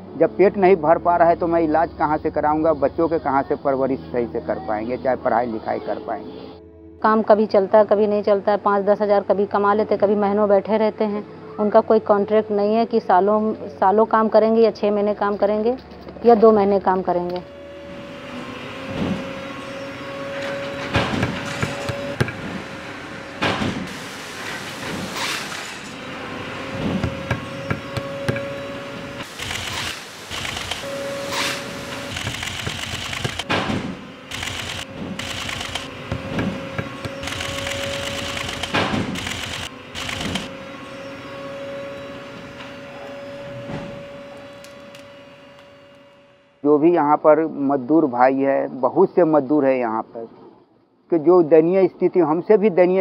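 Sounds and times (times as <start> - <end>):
press knocking: 20.9 - 22.6, 26.7 - 28.6, 36.0 - 37.2
machine hum with thin whine: 25.6 - 46.9.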